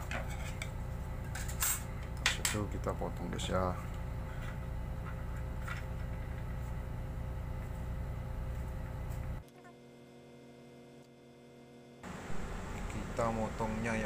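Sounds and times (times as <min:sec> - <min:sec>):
low background hum: 0:00.0 - 0:14.0.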